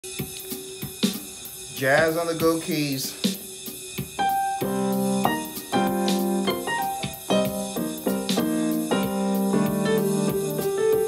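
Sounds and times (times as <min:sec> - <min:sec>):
jazz drum pattern: 0:00.0 - 0:11.0
held keyboard note: 0:04.2 - 0:11.0.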